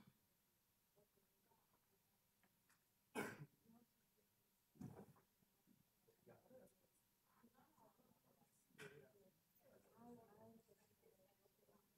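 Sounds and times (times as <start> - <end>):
person clearing throat: 3.2 - 3.5.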